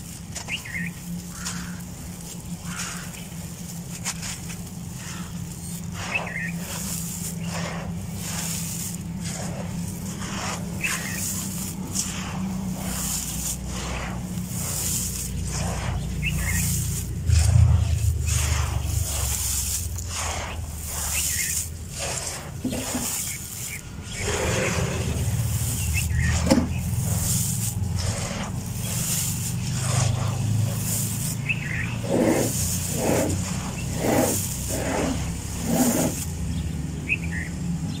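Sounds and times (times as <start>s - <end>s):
hands rubbing through sand: 0.0s - 37.8s
steady low rumble: 0.0s - 38.0s.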